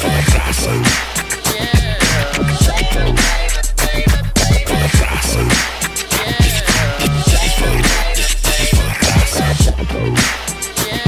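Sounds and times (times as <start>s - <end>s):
booming kick drums: 0.3s - 0.7s, 1.8s - 5.6s, 6.4s - 8.1s, 8.7s - 9.9s
sharp snare hits: 0.9s - 1.4s, 10.2s - 10.6s.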